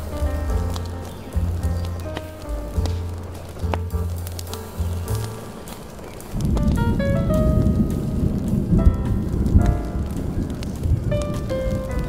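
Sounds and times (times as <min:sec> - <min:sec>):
rain: 0:00.0 - 0:12.0
rolling thunder: 0:00.0 - 0:12.0
smooth jazz: 0:00.0 - 0:12.0.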